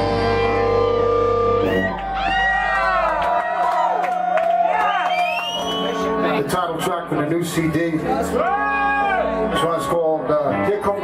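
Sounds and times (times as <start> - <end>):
rock band final chord: 0.0 - 3.2
audience cheering and shouting: 0.0 - 6.2, 8.0 - 9.9.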